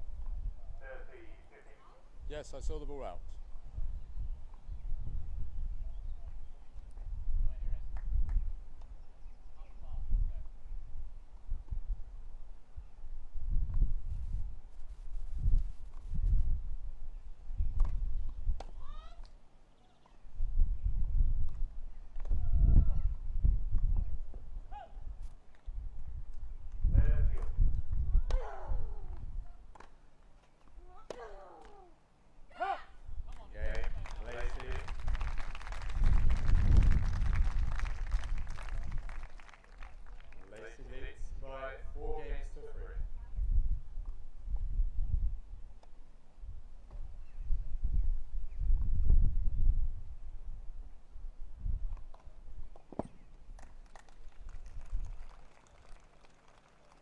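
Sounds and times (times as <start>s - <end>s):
crowd applauding: 33.8s - 40.6s, 53.6s - 57.0s.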